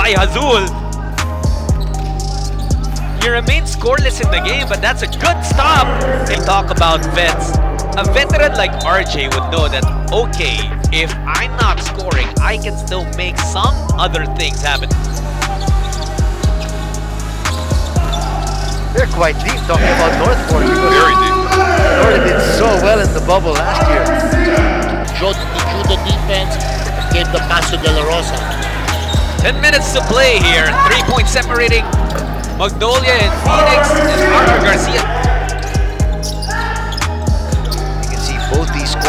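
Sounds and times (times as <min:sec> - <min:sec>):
music with deep bass: 0:00.0 - 0:39.0.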